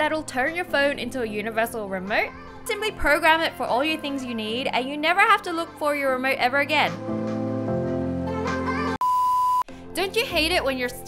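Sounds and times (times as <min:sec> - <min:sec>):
voice: 0:00.0 - 0:07.0, 0:10.0 - 0:11.0
background music: 0:00.0 - 0:09.0, 0:09.6 - 0:11.0.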